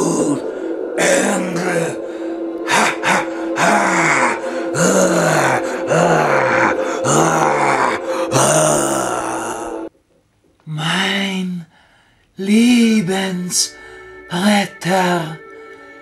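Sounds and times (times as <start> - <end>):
background music held tone: 0.0 - 10.1, 12.4 - 16.0
man growling cries: 2.6 - 9.9.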